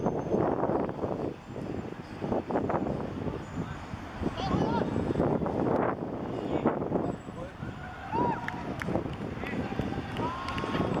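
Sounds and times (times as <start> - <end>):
footballers shouting: 9.4 - 11.0.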